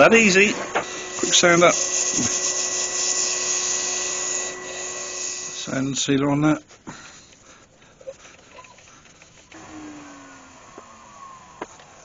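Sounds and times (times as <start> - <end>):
cloth rubbing spinning wood: 7.9 - 12.0.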